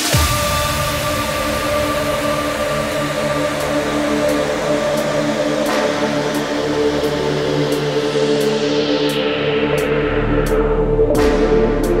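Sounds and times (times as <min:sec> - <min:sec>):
sustained synthesizer chords: 0:00.0 - 0:12.0.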